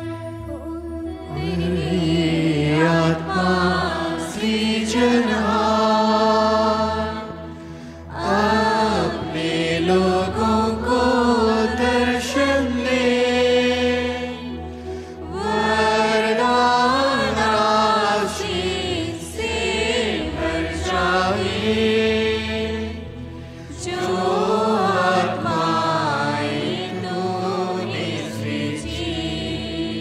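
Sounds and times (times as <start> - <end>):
person singing a hymn: 0.0 - 23.1, 23.7 - 30.0
steady low drone: 0.0 - 30.0.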